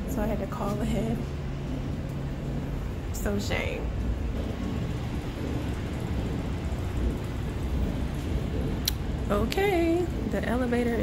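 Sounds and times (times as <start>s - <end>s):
low uneven rumbling: 0.0s - 11.0s.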